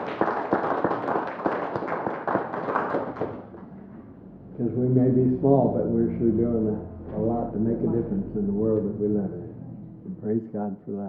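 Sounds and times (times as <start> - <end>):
crowd applauding: 0.0 - 3.6.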